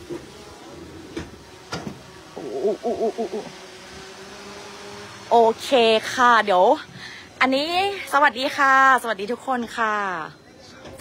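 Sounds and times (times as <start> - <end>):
steady background hum: 0.0 - 10.8.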